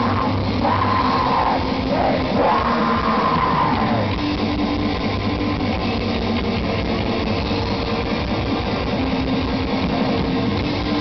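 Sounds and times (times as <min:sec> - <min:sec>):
black metal band playing: 0:00.0 - 0:11.0.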